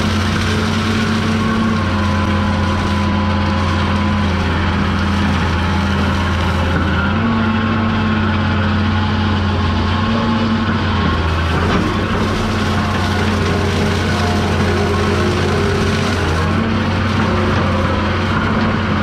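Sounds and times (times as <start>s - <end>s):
excavator diesel engine running: 0.0s - 19.0s
mulching head grinding brush: 0.0s - 19.0s.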